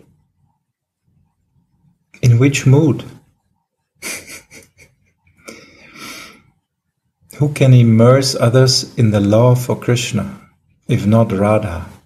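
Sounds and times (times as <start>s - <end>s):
man breathing: 5.4s - 6.6s.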